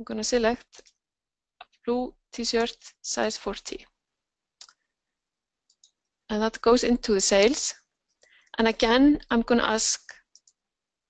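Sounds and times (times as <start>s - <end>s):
computer mouse clicks: 4.6s - 4.9s, 5.7s - 6.1s, 10.2s - 10.6s.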